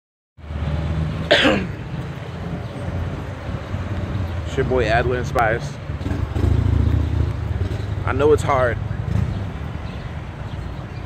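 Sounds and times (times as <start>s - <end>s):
low rumble of street noise: 0.4s - 11.0s
man coughing: 1.3s - 1.8s.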